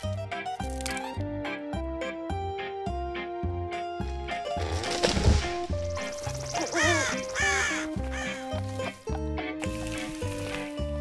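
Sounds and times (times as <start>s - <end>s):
animal harsh cries: 6.5s - 8.4s.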